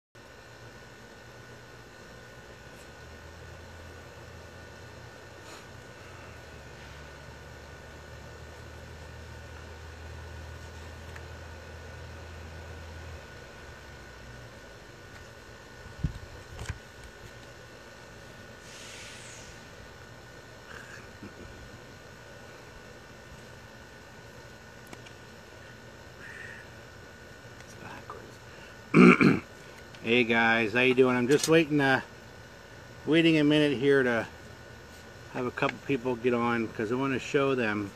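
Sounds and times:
faint high whine: 0.2s - 37.9s
low hum: 0.2s - 37.9s.

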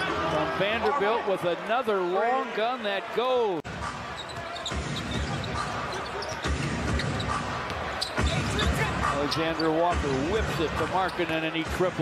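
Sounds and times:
sneaker squeaks: 4.1s - 9.8s.

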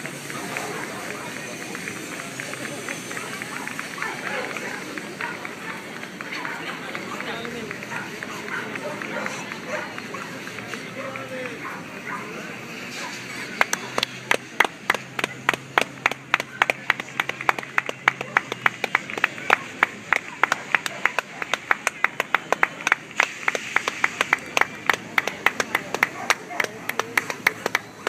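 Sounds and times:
hand clapping: 0.0s - 12.0s, 12.7s - 28.0s.

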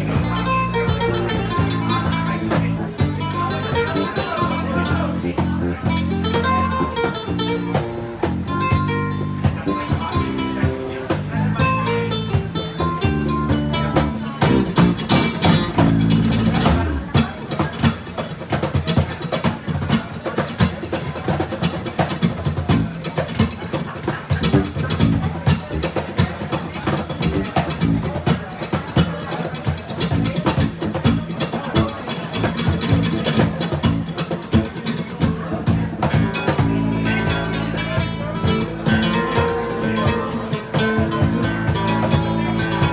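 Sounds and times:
acoustic guitars playing: 0.0s - 42.9s
cajon drumming: 0.0s - 42.9s.

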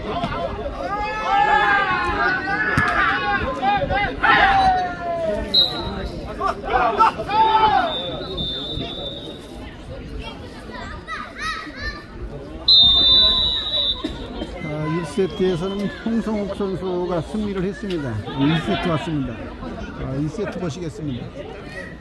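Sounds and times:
players shouting: 0.2s - 9.4s
high whistle-like tone: 5.5s - 6.0s, 7.8s - 9.5s, 12.7s - 14.0s.

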